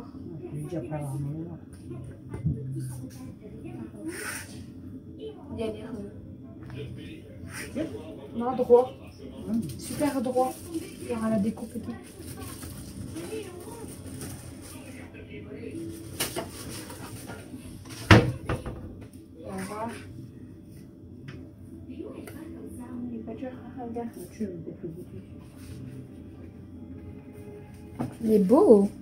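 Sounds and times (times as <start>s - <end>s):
faint voices: 0.0s - 20.6s.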